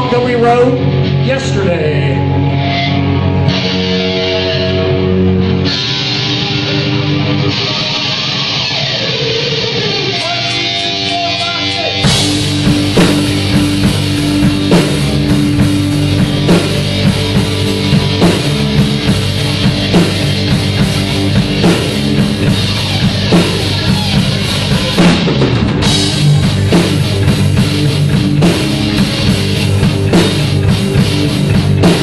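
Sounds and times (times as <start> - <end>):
bass guitar: 0.0 - 32.0
distorted electric guitar chords: 0.0 - 32.0
drum kit beat: 0.0 - 32.0.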